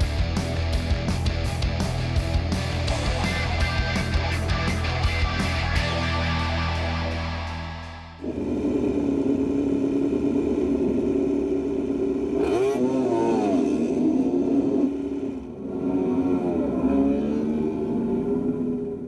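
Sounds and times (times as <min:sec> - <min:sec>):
racing motorcycle engines revving: 0:00.0 - 0:19.0.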